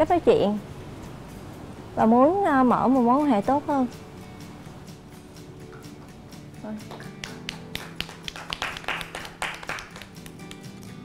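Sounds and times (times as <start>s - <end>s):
soft background music: 0.0s - 11.0s
people clapping: 6.9s - 11.0s.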